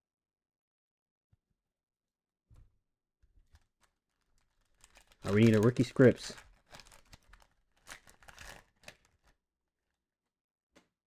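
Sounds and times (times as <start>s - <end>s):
foil wrapper crinkling and tearing: 3.5s - 9.9s.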